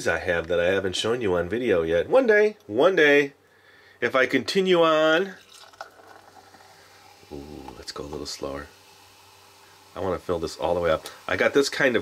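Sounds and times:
cola pouring into a glass: 5.2 - 12.0
fizzing foam: 5.4 - 12.0.

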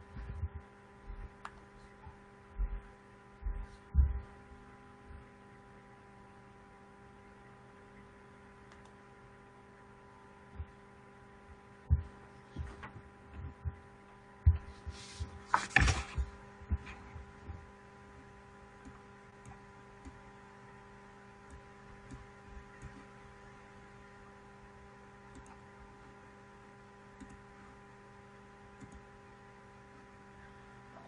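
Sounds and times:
soft low thuds: 0.0 - 1.4, 2.6 - 4.3
soft low thumps: 0.0 - 1.4, 2.0 - 5.3, 11.5 - 13.8, 14.4 - 15.4
steady electrical hum: 0.0 - 31.0.

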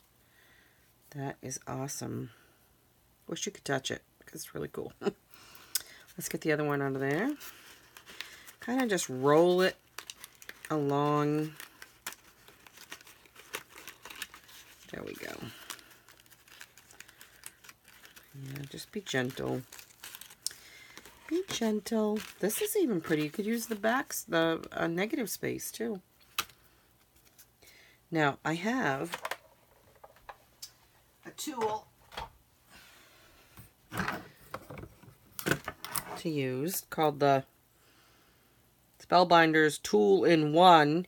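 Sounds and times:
cardstock crinkling and crackling: 5.9 - 25.3.

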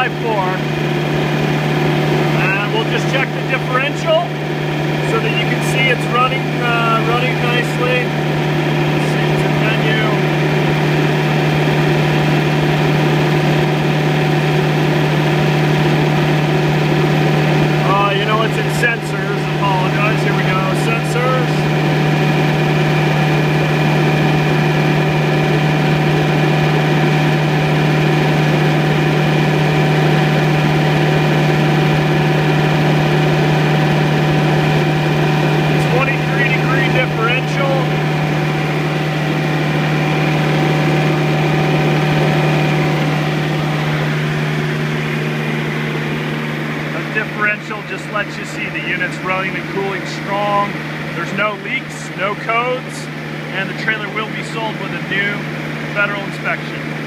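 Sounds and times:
refrigeration unit humming: 0.0 - 57.0.

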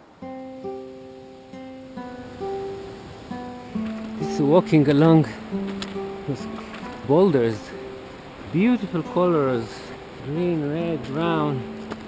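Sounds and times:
acoustic guitar melody: 0.0 - 12.0.

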